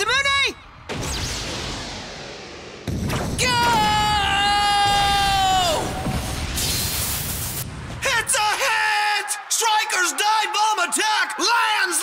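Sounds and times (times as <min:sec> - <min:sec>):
high-pitched battle yell: 0:03.4 - 0:06.1
burst of hiss: 0:06.4 - 0:07.6.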